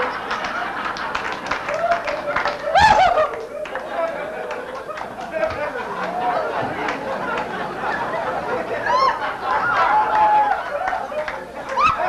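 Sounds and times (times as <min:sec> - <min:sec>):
audience clapping: 0:00.0 - 0:12.0
audience laughing: 0:00.0 - 0:12.0
person hooting: 0:02.6 - 0:04.7.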